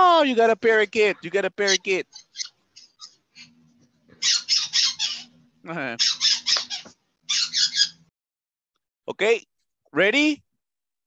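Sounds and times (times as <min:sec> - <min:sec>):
parakeet chirping and squawking: 0:01.0 - 0:08.1.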